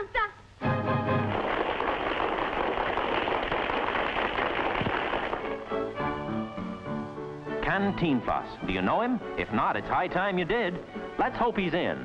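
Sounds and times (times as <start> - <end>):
music: 0.6 - 1.9, 5.0 - 12.0
audience applauding: 0.7 - 5.9.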